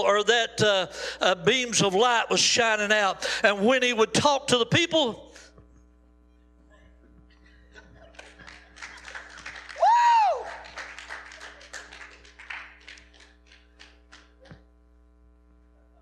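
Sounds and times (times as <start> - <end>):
hand clapping: 8.0 - 14.7
person whooping: 9.8 - 10.8.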